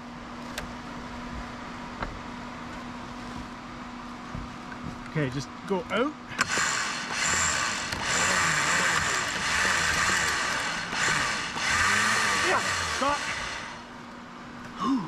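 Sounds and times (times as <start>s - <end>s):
winch motor and gears: 5.0s - 14.1s
truck engine at full throttle: 6.3s - 14.0s.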